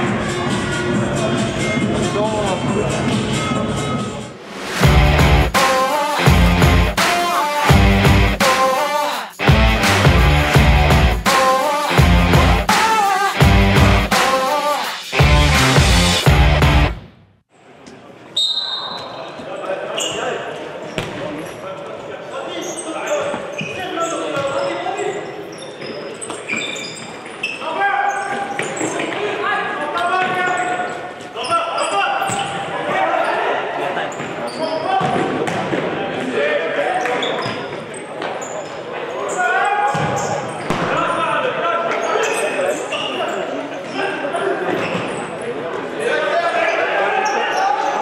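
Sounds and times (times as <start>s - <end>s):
shoe squeaks on wooden floor: 18.4s - 21.6s, 22.6s - 29.2s, 34.1s - 35.2s, 37.0s - 40.8s, 42.0s - 45.4s.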